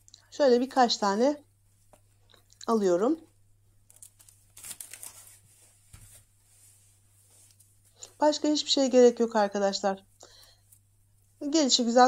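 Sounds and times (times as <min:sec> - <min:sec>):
cheese slices rustling and tearing: 0:03.8 - 0:05.7.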